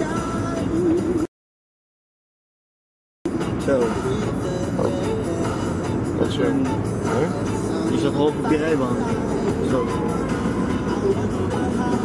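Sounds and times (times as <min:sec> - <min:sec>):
road noise inside moving car: 0:00.0 - 0:01.3, 0:03.3 - 0:12.0
car engine: 0:03.3 - 0:12.0.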